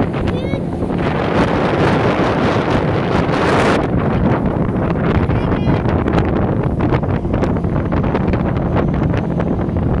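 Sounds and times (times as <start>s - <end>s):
boat motor droning: 0.0s - 10.0s
wind buffeting microphone: 0.0s - 10.0s.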